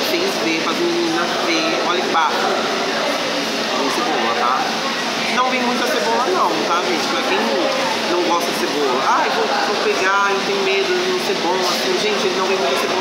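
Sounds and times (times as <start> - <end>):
steady background noise: 0.0 - 13.0.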